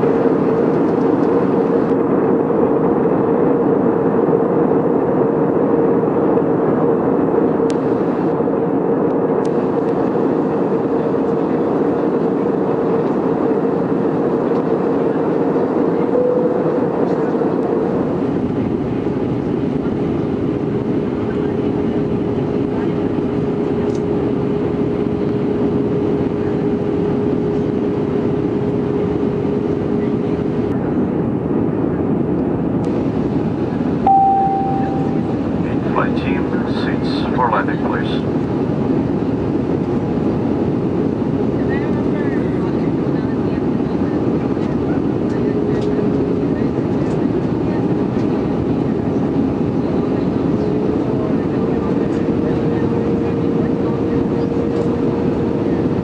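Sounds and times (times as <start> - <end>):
airplane cabin roar: 0.0 - 56.0
steady hum: 32.9 - 38.9.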